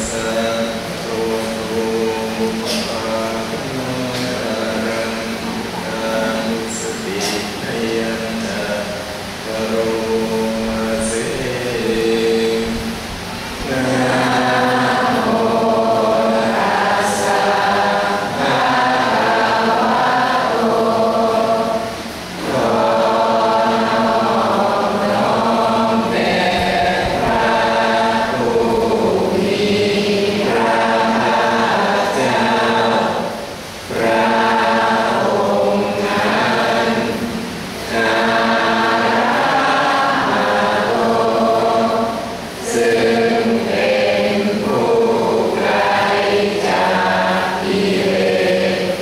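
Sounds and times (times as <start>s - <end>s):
voices chanting in unison: 0.0s - 49.0s.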